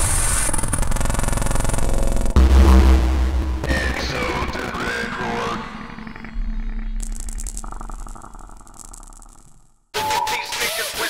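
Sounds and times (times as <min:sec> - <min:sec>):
industrial hardcore electronic music: 0:00.1 - 0:11.0.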